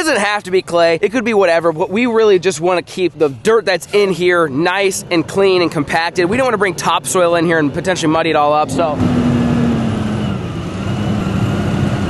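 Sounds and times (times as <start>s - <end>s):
diesel truck engine running: 0.0s - 12.0s.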